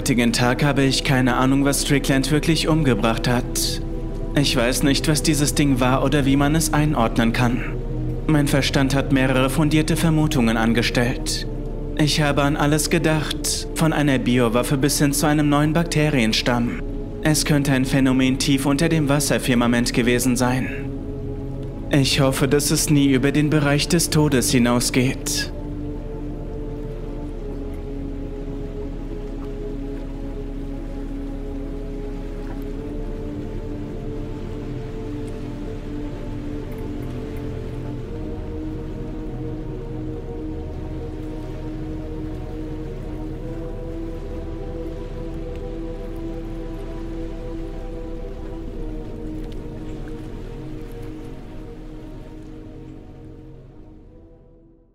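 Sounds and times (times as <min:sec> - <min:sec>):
rain-like hiss: 0:00.0 - 0:54.0
slow ambient music: 0:00.0 - 0:54.9.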